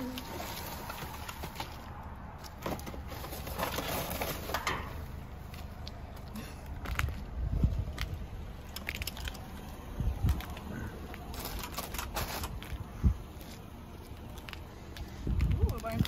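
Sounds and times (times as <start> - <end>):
rustling bags and cardboard: 0.0 - 5.7
low rumble: 4.9 - 16.0.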